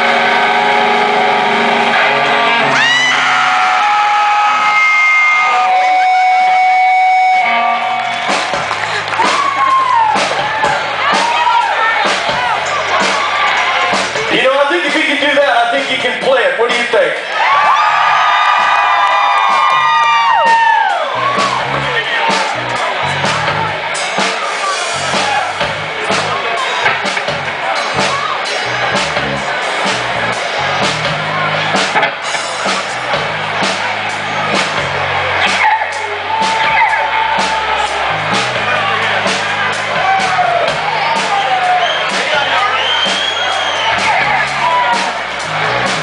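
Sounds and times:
crowd cheering and whooping: 0.0s - 14.3s, 17.2s - 46.0s
live rock band playing: 0.0s - 16.9s, 18.5s - 46.0s.

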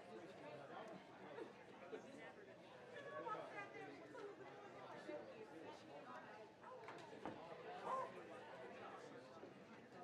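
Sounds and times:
faint crowd chatter: 6.6s - 10.0s.

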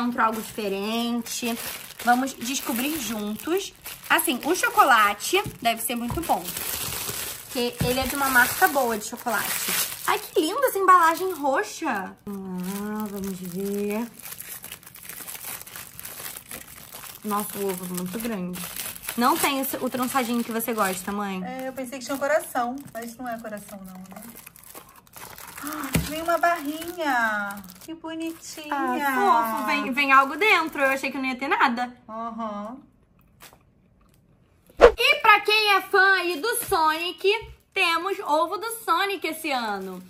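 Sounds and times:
foil wrapper crinkling: 0.0s - 31.0s, 39.2s - 40.0s.

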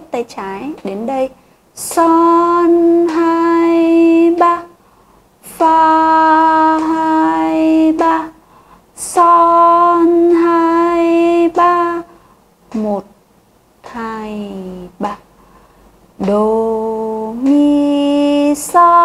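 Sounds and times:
woman singing held notes: 0.0s - 4.8s, 5.4s - 8.4s, 13.8s - 15.3s, 16.2s - 19.0s.

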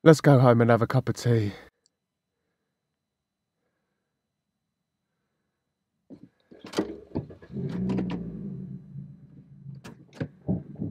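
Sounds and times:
car motor humming: 7.3s - 10.9s
car door clicks and knocks: 9.8s - 10.7s.

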